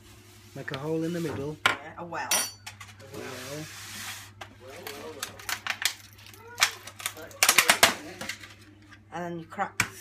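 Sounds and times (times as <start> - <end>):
plastic packaging crinkling: 4.6 - 8.7.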